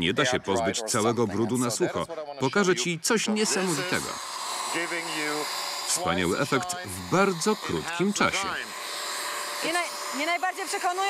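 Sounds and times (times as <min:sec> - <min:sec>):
carpet washer motor whirring: 0:03.4 - 0:11.0.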